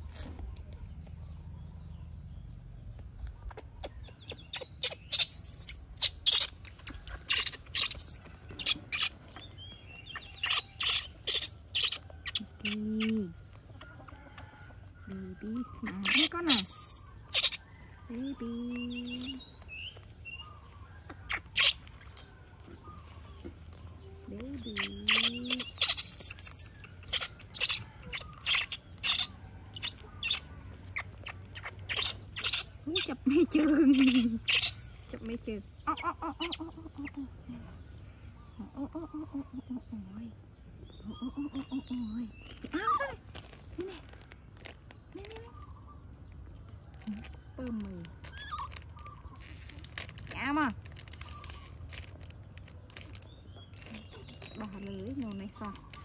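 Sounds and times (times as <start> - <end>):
disposable diaper crinkling: 48.2 - 54.9.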